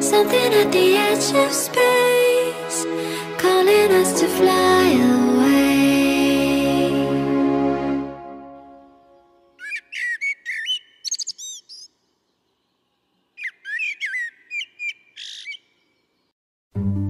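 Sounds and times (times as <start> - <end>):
songbird singing: 9.0 - 16.4.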